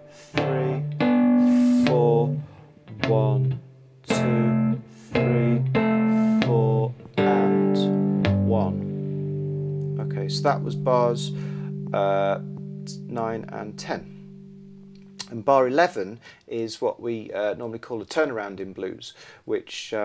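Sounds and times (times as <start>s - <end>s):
cigar box guitar fingerpicked: 0.2s - 15.4s.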